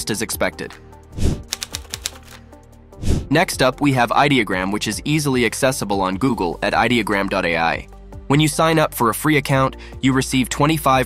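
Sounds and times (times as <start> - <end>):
quiet background music: 0.0 - 11.0
quick run of clicks: 1.5 - 2.4.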